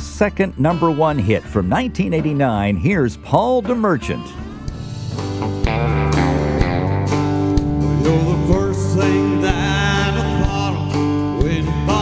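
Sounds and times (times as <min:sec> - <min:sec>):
live country band playing: 0:00.0 - 0:12.0
gliding lead guitar lines: 0:03.8 - 0:12.0
steady drum beat: 0:04.6 - 0:12.0.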